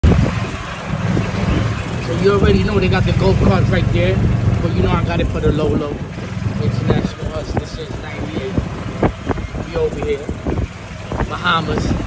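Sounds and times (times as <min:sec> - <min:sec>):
golf cart driving on pavement: 0:00.0 - 0:12.0.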